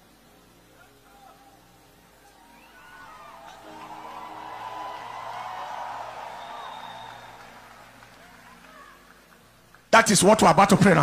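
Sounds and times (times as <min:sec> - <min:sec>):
soft music of held chords: 0:00.0 - 0:11.0.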